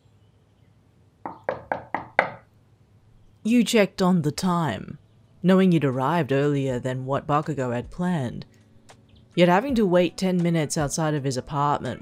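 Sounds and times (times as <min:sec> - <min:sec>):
knocking on a wooden door: 0:01.3 - 0:02.5.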